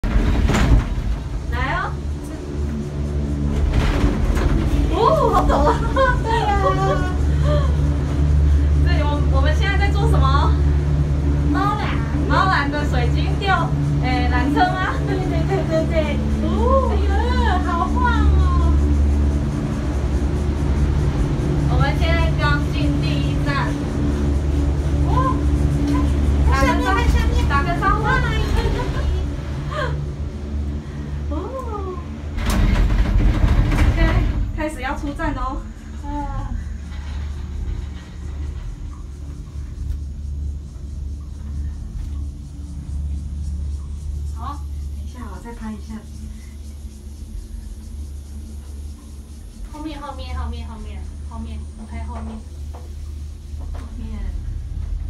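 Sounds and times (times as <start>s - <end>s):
gondola cabin humming: 0.0s - 55.0s
woman speaking: 1.5s - 2.0s, 4.9s - 7.6s, 8.8s - 10.6s, 11.6s - 18.9s, 21.7s - 23.8s, 25.0s - 30.0s, 33.9s - 36.6s, 44.4s - 46.1s, 49.7s - 52.4s, 53.9s - 54.4s.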